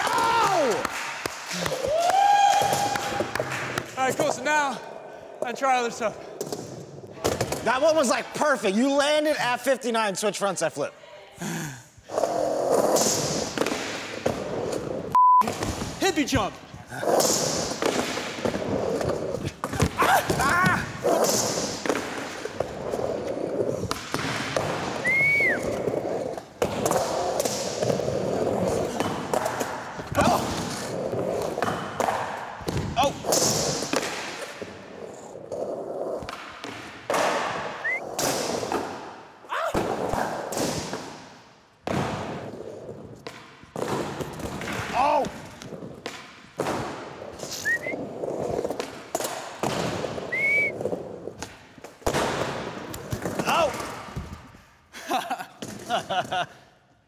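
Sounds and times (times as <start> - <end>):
skateboard wheels rolling: 12.1 - 15.1, 16.9 - 39.1, 41.8 - 53.9.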